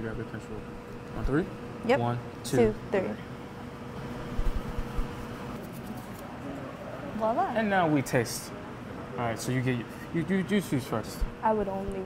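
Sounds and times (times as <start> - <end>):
kitchen background hum: 0.0 - 12.0.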